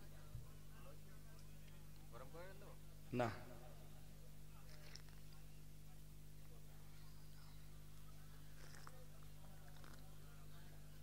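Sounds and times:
faint electrical hum: 0:00.0 - 0:11.0
faint scattered noises: 0:00.0 - 0:11.0.

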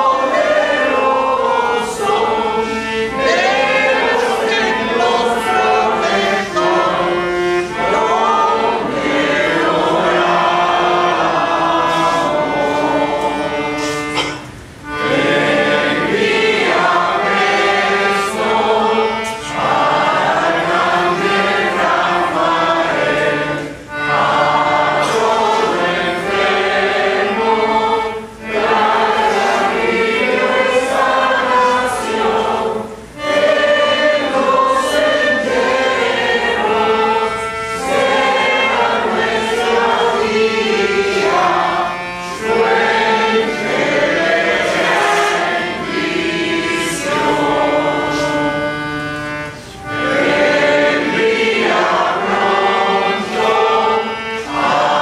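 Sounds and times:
group singing a hymn: 0:00.0 - 0:55.0.

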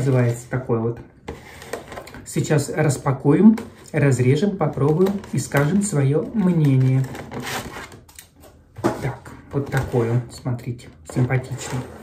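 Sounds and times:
plastic container crackling: 0:01.4 - 0:08.1.

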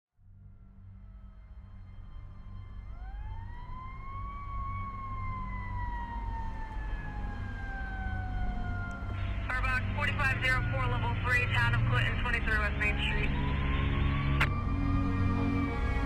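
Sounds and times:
fire siren wailing: 0:00.9 - 0:16.0
low steady rumble: 0:07.8 - 0:16.0.

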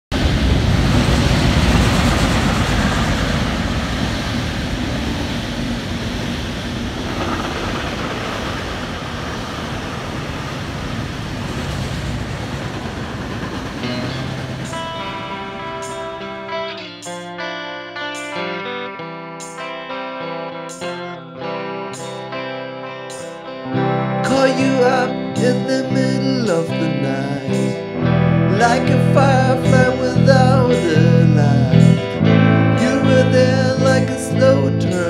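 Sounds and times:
train wheels on track: 0:00.2 - 0:16.3
guitar notes: 0:13.2 - 0:35.0.

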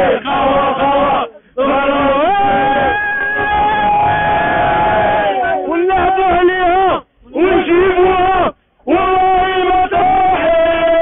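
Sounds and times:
voices singing a chant: 0:00.0 - 0:05.8.

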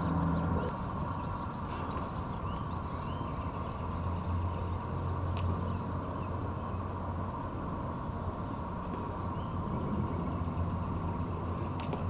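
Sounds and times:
constant hum: 0:00.0 - 0:12.0
low outdoor rumble: 0:00.0 - 0:12.0
faint high chirp: 0:05.7 - 0:07.1.

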